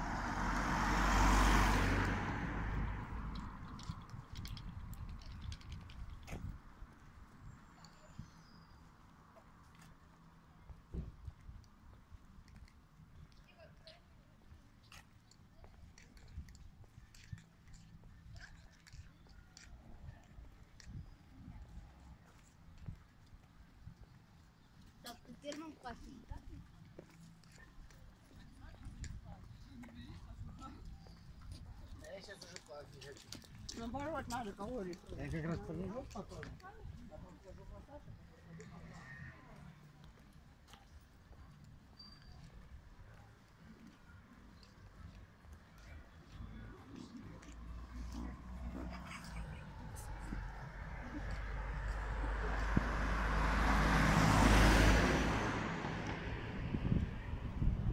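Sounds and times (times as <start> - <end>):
soft ticks and chirps: 3.3 - 25.7
faint low outdoor rumble: 36.5 - 57.9.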